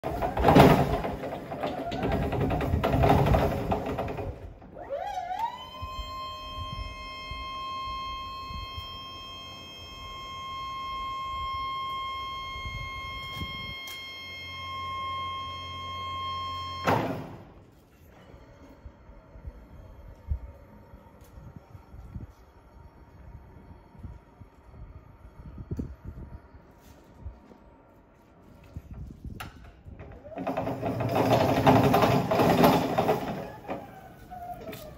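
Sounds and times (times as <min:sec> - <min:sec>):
stacker driving noise: 0:00.0 - 0:04.9, 0:29.0 - 0:34.9
hydraulic pump motor whine: 0:00.0 - 0:34.9.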